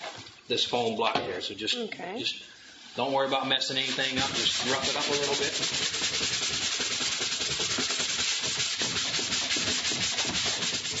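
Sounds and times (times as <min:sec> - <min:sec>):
sanding block rubbing plastic: 0:03.8 - 0:11.0.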